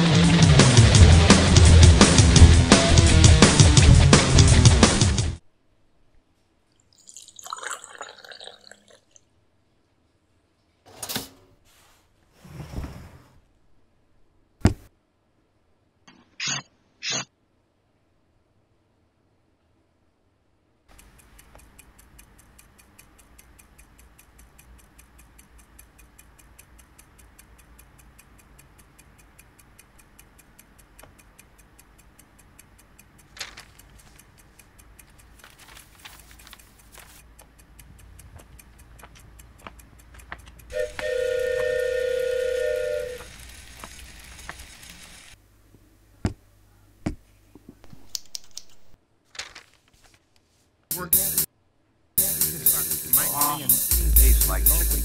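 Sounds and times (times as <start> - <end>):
clock ticking: 0.0 - 5.4, 20.9 - 45.4, 50.9 - 51.5, 52.2 - 55.0
loud rock music: 0.0 - 5.4, 52.2 - 55.0
tea pouring into a cup: 6.8 - 9.2.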